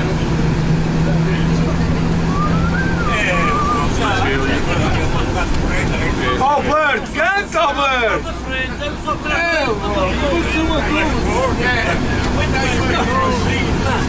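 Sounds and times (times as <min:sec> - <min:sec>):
coach engine humming: 0:00.0 - 0:14.0
passengers chatting: 0:00.0 - 0:14.0
loud voices with swooping pitch: 0:02.1 - 0:05.3.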